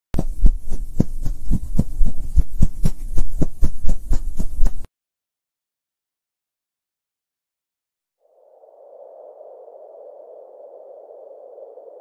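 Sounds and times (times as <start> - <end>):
steady low hum: 0.2 - 4.9, 8.3 - 12.0.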